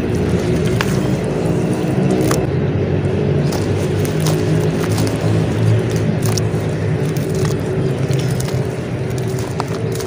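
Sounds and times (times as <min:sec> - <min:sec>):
clay crackling in water: 0:00.0 - 0:02.5, 0:03.4 - 0:10.0
low motor hum: 0:00.0 - 0:10.0.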